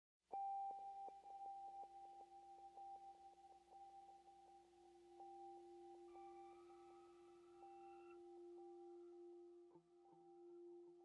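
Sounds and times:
steady pure electronic tones: 0.4 - 11.0.

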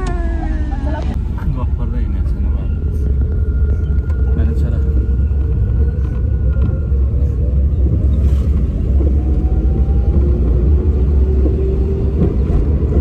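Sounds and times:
car engine and tyres rumble: 0.0 - 13.0.

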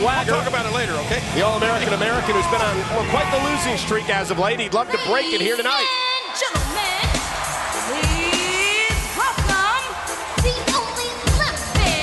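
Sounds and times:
heavy bass drum beats: 6.6 - 12.0.

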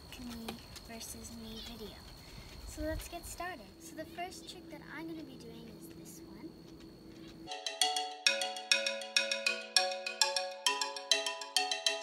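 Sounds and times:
faint steady background: 0.0 - 12.0
mallet percussion tune: 7.5 - 12.0.

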